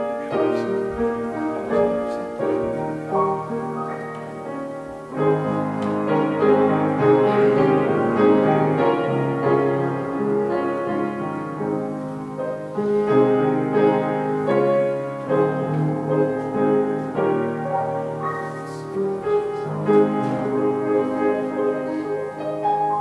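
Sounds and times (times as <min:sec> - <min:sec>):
solo piano chords: 0:00.0 - 0:23.0.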